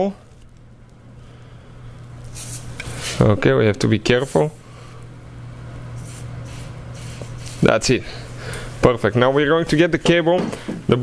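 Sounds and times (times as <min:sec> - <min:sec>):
faint low hum: 0:00.0 - 0:06.6.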